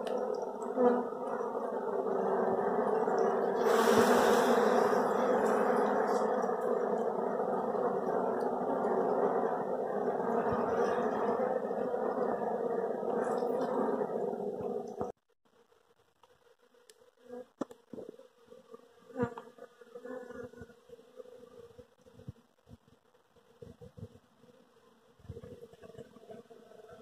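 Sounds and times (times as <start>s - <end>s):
honeybee colony buzzing: 0.0s - 15.2s, 16.7s - 27.0s.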